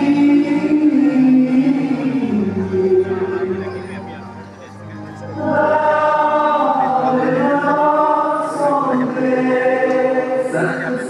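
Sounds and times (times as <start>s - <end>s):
choir singing: 0.0s - 4.1s, 4.8s - 11.0s.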